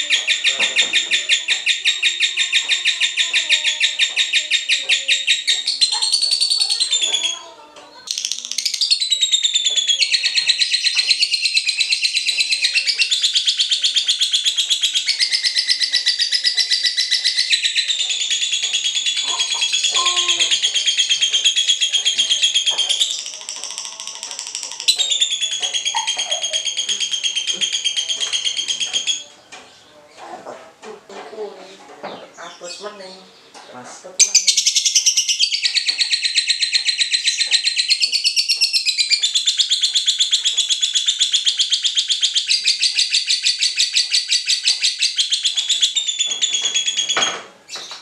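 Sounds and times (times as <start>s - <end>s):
bird chattering trill: 0.0s - 29.4s, 34.2s - 48.0s.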